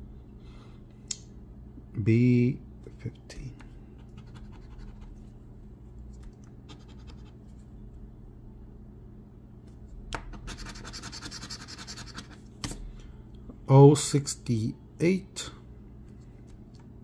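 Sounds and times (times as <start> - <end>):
coin scratching lottery ticket: 10.4 - 12.4.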